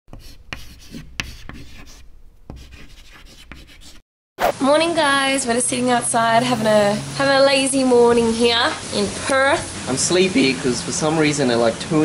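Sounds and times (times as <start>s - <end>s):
pen scratching on paper: 0.1s - 4.5s.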